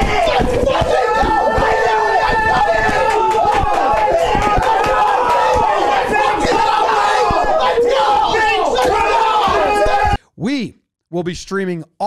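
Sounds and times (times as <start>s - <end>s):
men yelling and screaming: 0.0s - 10.2s
thumps from jumping and stomping: 0.0s - 10.2s.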